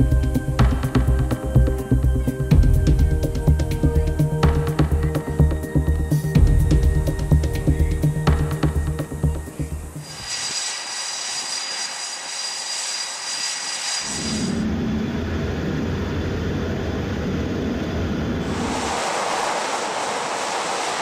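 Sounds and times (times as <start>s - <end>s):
jet engine high whine: 8.8s - 21.0s
jet engine rushing noise: 10.0s - 15.2s, 17.9s - 21.0s
jet engine deep rumble: 10.0s - 21.0s.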